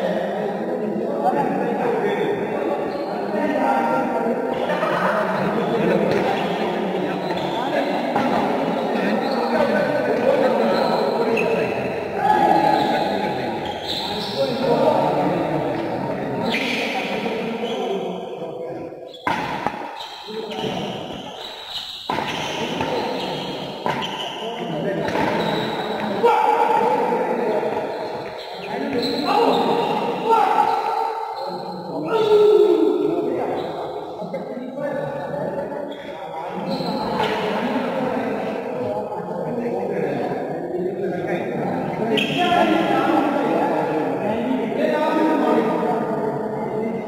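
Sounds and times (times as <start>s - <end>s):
players calling and talking: 0.0s - 47.0s
racket hitting shuttlecock: 19.2s - 20.0s, 22.1s - 22.9s, 23.8s - 24.2s, 25.0s - 25.4s.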